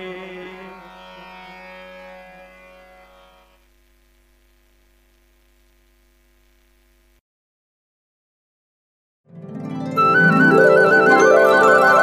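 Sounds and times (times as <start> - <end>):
tanpura drone: 0.0 - 3.6.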